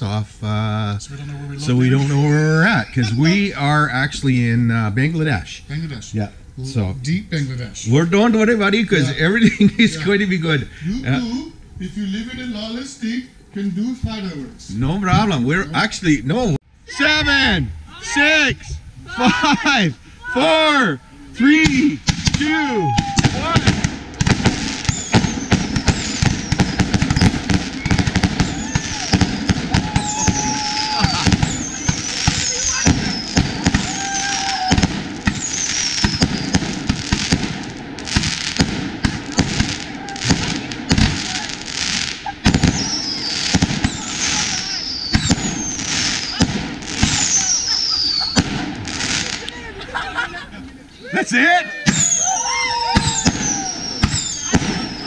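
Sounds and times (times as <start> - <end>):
fireworks whistling: 1.1 - 4.5, 17.0 - 49.8, 51.8 - 55.0
firework launches and aerial bangs: 21.6 - 49.5, 51.9 - 55.0.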